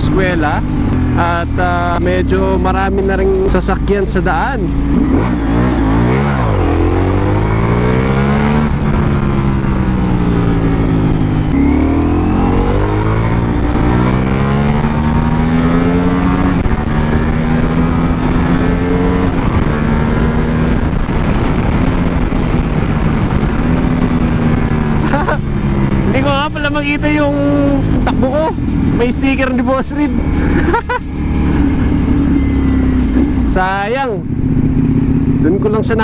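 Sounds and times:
motorcycle engine revving: 0.0 - 36.0.

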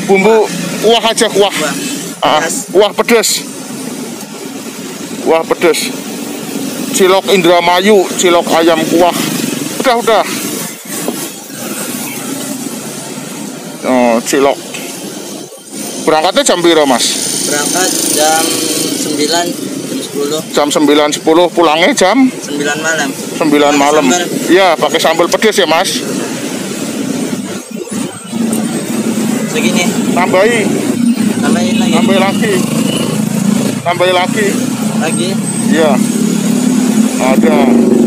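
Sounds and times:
motorbike engines passing: 0.0 - 38.0
street traffic rumble: 0.0 - 38.0.

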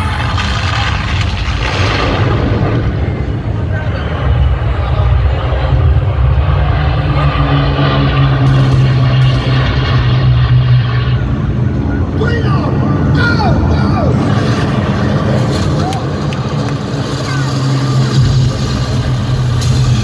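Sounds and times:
crowd noise: 0.0 - 20.0
low mechanical drone over loudspeakers: 0.0 - 20.0.

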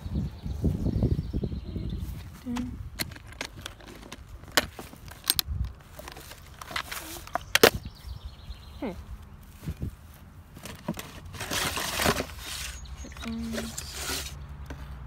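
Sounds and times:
rummaging through items: 2.0 - 7.8, 9.5 - 15.0
sharp clicks and knocks: 2.5 - 7.9.

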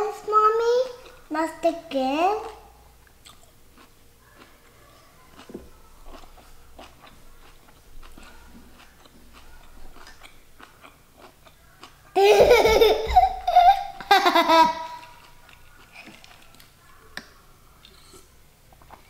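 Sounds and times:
chewing with mouth closed: 3.0 - 12.1
child laughing loudly: 12.2 - 15.2.

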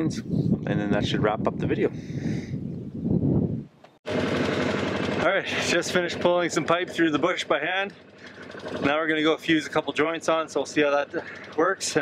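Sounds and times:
vehicle engine idling: 4.1 - 12.0.

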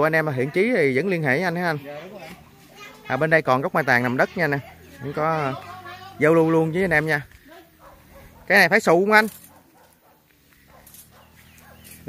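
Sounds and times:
distant animal calls: 9.4 - 12.0.

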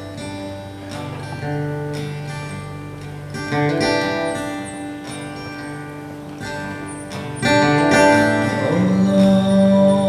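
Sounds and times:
acoustic guitar strumming: 0.0 - 10.0
man singing: 8.1 - 10.0.

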